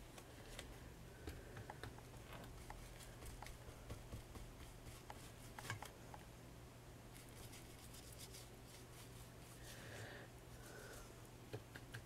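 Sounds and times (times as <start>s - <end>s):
paintbrush scratching and tapping: 1.5s - 5.9s.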